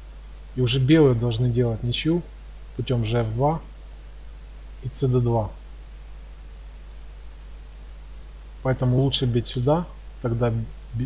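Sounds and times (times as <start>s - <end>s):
computer mouse clicks: 3.8s - 4.6s, 5.2s - 6.0s, 6.9s - 7.2s.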